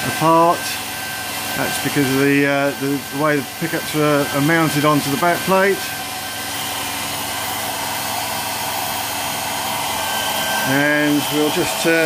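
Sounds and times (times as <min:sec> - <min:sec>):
whirring hum: 0:00.0 - 0:12.0
faint high whine: 0:09.1 - 0:12.0.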